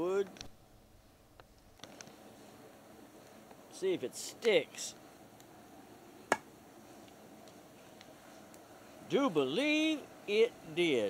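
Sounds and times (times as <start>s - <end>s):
knife striking wooden log: 6.3s - 6.5s.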